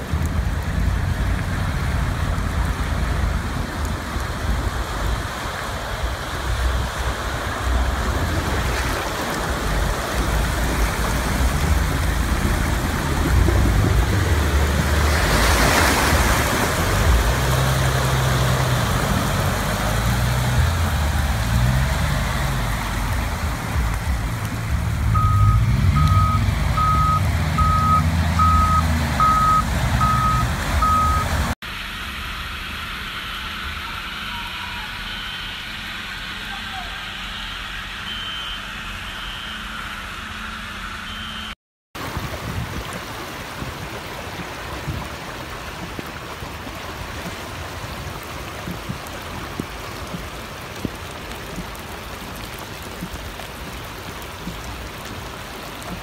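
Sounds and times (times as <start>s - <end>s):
car engines running low: 0.0s - 36.5s
rush of floodwater: 0.0s - 56.0s
electronic beeping: 25.2s - 31.3s.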